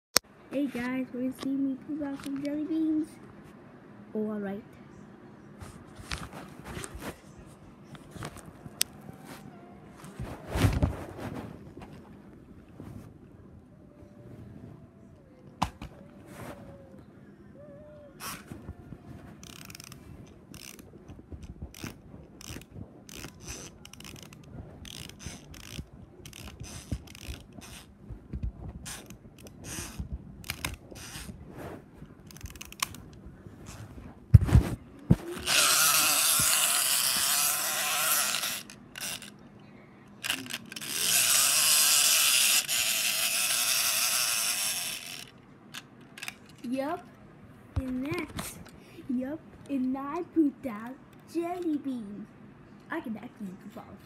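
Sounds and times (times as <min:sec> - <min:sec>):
rubbing against microphone: 0:05.6 - 0:13.2, 0:20.8 - 0:32.2, 0:33.2 - 0:38.6.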